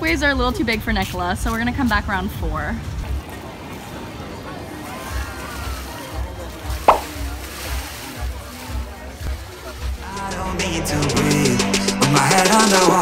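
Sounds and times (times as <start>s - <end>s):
crowd chatter: 0.0s - 13.0s
water sloshing: 2.8s - 9.8s
brief sharp sound: 6.9s - 7.1s
music with steady beat: 8.3s - 13.0s.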